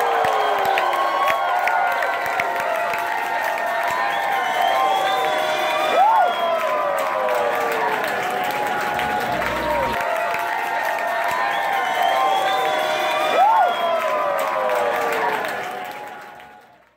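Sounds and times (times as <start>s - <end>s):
people shouting and whooping: 0.0s - 16.3s
crowd cheering and clapping: 0.0s - 16.9s.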